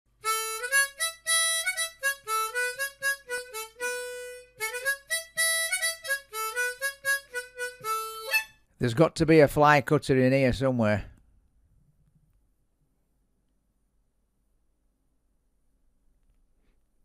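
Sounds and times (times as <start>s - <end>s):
solo harmonica playing: 0.2s - 8.6s.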